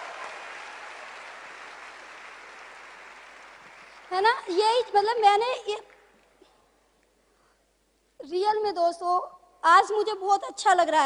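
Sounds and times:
audience applause: 0.0 - 4.6.

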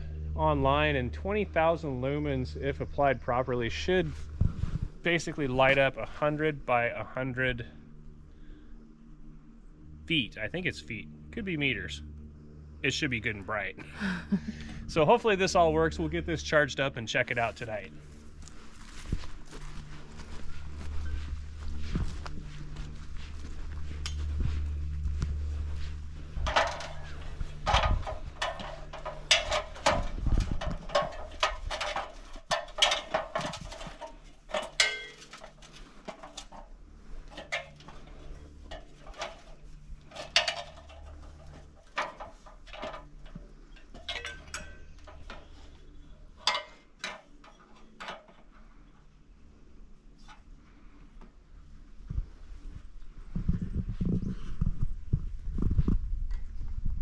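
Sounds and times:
low rumble: 0.0 - 46.4, 51.6 - 57.0
boots climbing metal ladder: 18.4 - 48.6.

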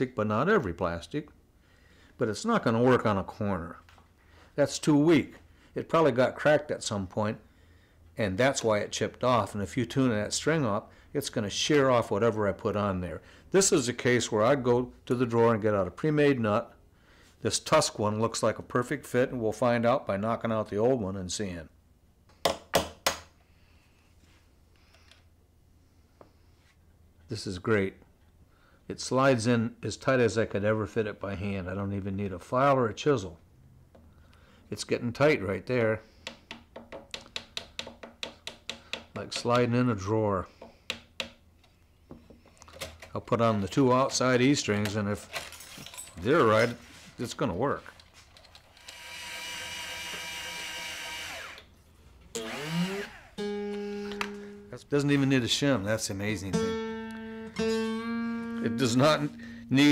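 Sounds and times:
faint handling sounds: 41.6 - 48.8
guitar string ringing: 53.4 - 54.8, 56.5 - 59.9.

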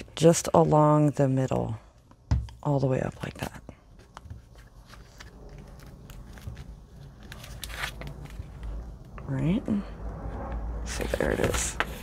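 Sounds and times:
paper pages rustling: 3.4 - 8.8.

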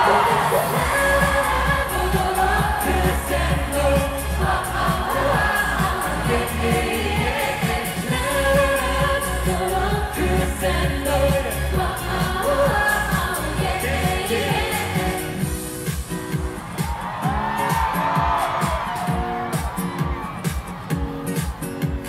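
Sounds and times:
woman singing into a microphone: 0.0 - 15.4
bass-heavy electronic beat: 0.0 - 22.0
pop song through concert speakers: 0.0 - 22.0.

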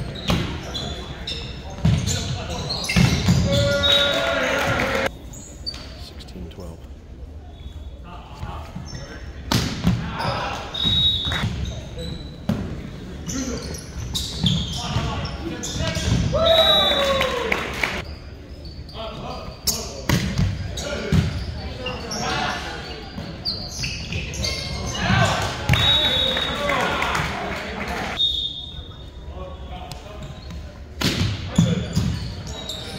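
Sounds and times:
sneakers squeaking on hardwood: 0.0 - 6.0, 8.4 - 16.3, 18.1 - 26.0, 30.1 - 32.9.

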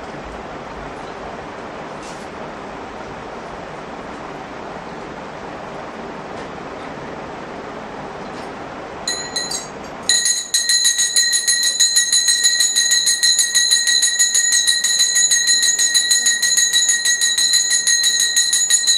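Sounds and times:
hand bell ringing: 9.1 - 18.9.

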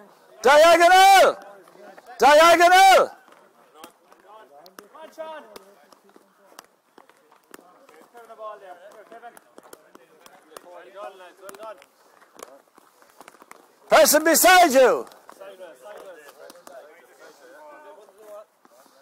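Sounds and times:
sticks and ball tapping: 3.2 - 8.3, 8.9 - 10.8.

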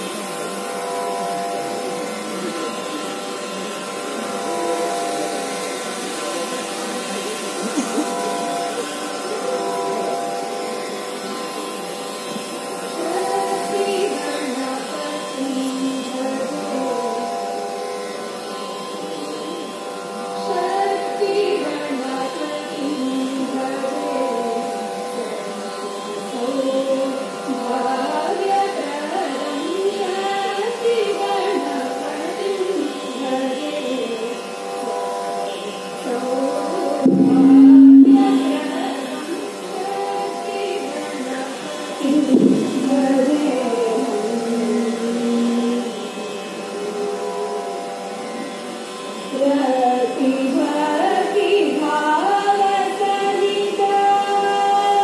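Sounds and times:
steady drone: 0.0 - 55.0
women singing prayer song: 13.0 - 17.3, 36.1 - 47.1.

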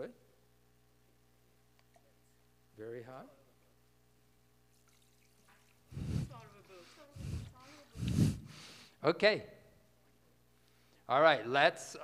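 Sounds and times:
water pouring into plastic basin: 4.7 - 5.9.

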